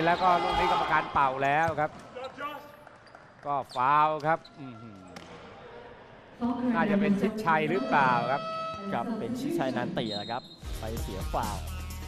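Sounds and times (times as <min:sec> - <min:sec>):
quiet arena noise: 0:00.0 - 0:11.8.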